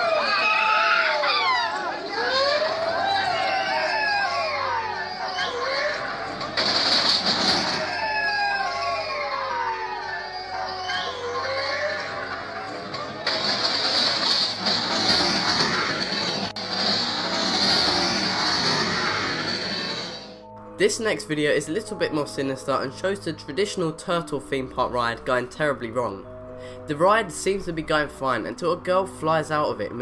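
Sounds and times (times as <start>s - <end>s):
riders screaming: 0.0s - 20.1s
loud ride music: 0.0s - 24.0s.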